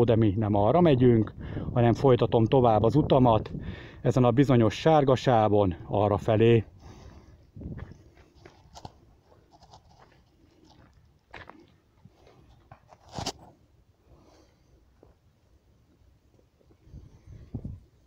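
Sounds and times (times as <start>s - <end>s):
footsteps on stony path: 6.8s - 13.6s.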